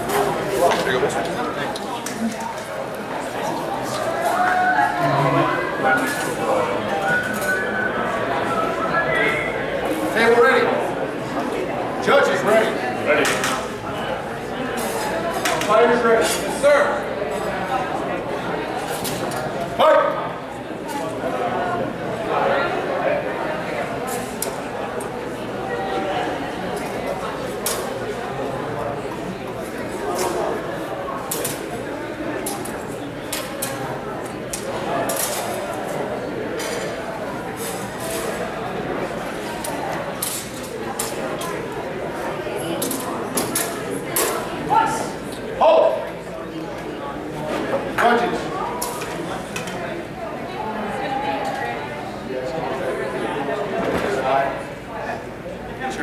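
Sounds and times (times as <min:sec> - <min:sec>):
murmur of voices: 0:00.0 - 0:56.0
people talking indistinctly: 0:00.0 - 0:56.0.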